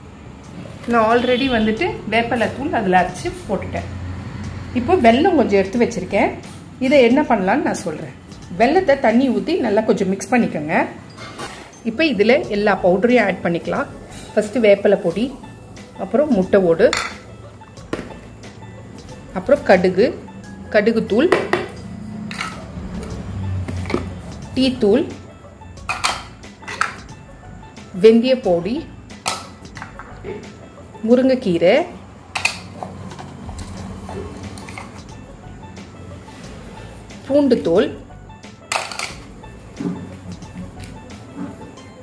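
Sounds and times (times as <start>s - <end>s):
background music: 0.0s - 42.0s
utensils and dishes clinking: 11.1s - 12.0s, 16.3s - 17.3s, 21.4s - 23.1s, 25.8s - 27.1s, 32.3s - 35.2s, 38.7s - 41.8s.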